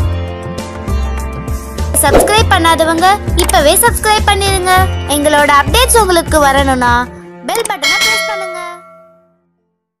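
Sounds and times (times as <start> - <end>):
bell ding: 7.8 - 9.4.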